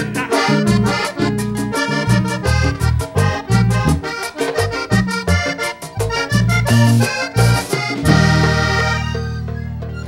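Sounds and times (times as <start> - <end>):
accordion band playing: 0.0 - 10.0.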